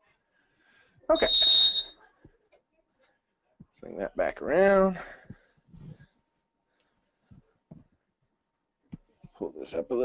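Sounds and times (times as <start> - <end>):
high-pitched electronic beep: 1.1 - 2.0.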